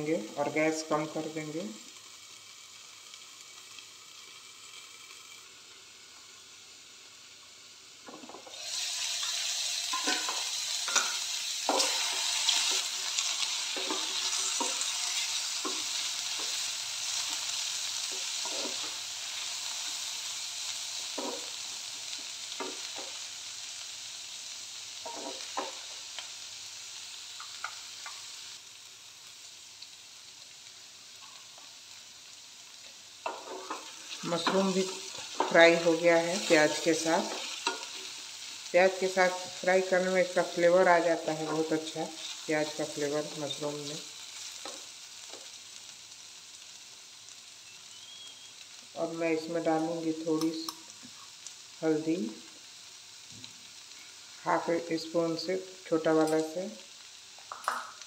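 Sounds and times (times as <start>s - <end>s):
vegetables sizzling in a pan: 0.0s - 58.0s.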